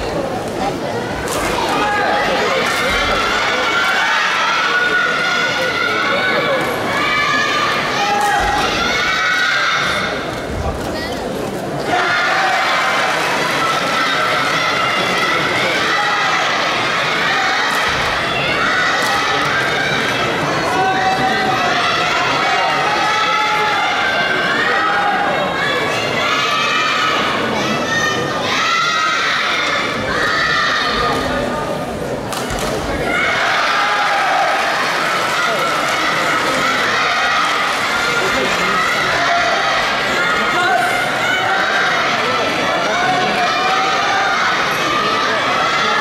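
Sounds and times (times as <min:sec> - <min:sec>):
people calling out in a hall: 0:00.0 - 0:46.0.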